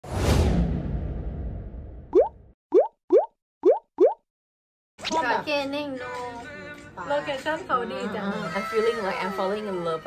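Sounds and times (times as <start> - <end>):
whoosh with low rumble: 0.0 - 2.1
rising bloop pops: 2.1 - 4.2.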